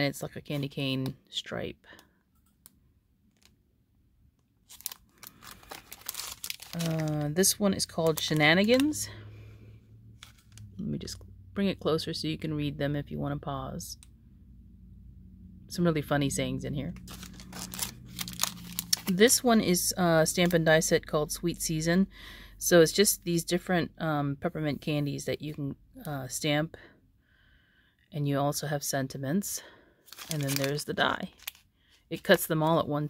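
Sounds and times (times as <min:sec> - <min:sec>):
plastic packaging crinkling: 0:04.6 - 0:09.2, 0:10.2 - 0:10.8, 0:17.0 - 0:20.7, 0:30.1 - 0:32.8.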